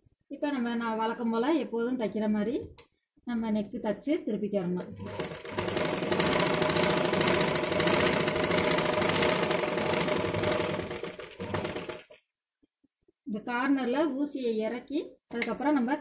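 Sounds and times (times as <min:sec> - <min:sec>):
sewing machine stitching fabric: 0:04.8 - 0:12.2.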